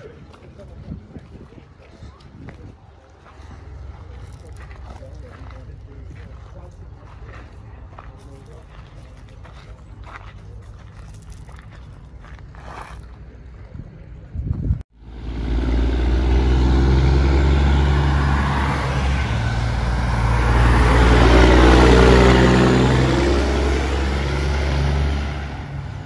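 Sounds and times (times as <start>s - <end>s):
truck diesel engine passing: 15.0s - 26.0s.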